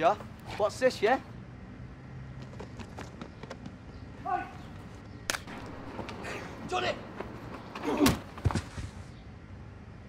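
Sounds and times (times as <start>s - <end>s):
street ambience: 0.0s - 10.0s
person shouting: 4.2s - 4.6s
faint footsteps: 4.7s - 9.1s.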